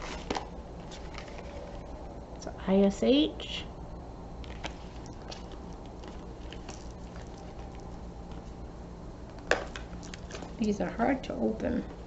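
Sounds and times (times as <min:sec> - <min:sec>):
packaging crinkling: 0:00.0 - 0:02.0, 0:04.4 - 0:08.6.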